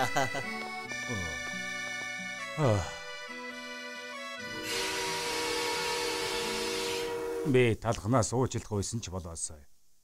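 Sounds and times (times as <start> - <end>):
voice wavering oh sounds: 1.0 - 1.4, 2.6 - 3.1.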